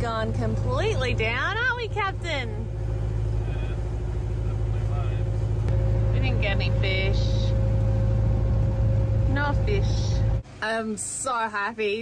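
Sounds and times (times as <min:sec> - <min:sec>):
boat engine drone: 0:00.0 - 0:10.5
faint engine whine: 0:00.0 - 0:10.6.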